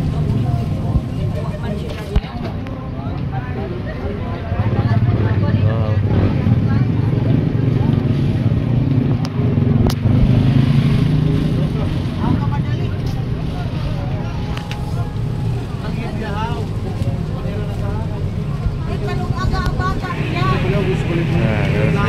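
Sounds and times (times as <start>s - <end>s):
engine running: 4.6s - 22.0s
background voices: 11.3s - 22.0s.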